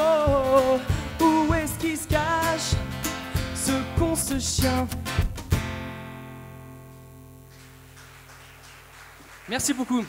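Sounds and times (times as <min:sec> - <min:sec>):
acoustic guitar strums: 0:00.0 - 0:07.9.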